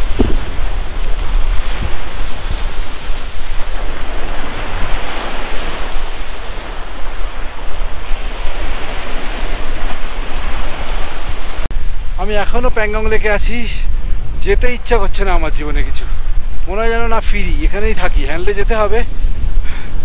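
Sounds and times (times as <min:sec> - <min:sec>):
waves washing up sandy shore: 0:00.0 - 0:14.4
wind buffeting microphone: 0:00.0 - 0:20.0.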